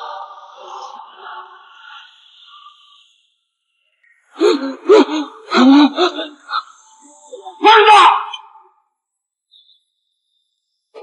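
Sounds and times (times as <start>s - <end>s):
man calling out: 7.6s - 8.6s.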